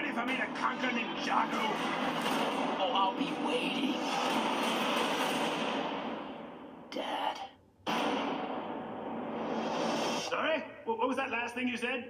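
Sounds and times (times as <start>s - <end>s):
action trailer music and effects: 0.0s - 10.5s.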